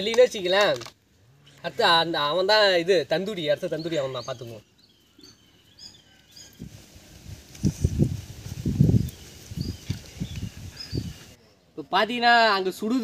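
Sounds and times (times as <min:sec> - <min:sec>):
small birds chirping: 0:01.4 - 0:12.0.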